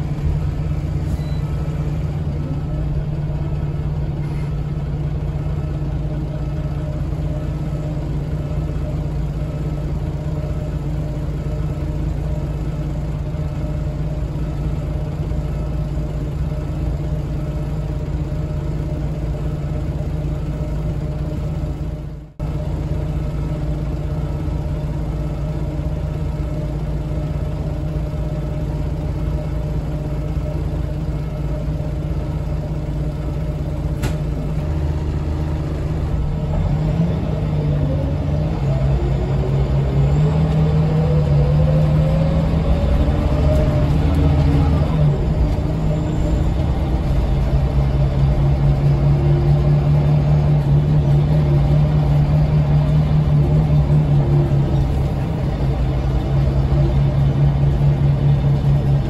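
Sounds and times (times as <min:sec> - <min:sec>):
diesel bus engine idling: 0:00.0 - 0:59.0.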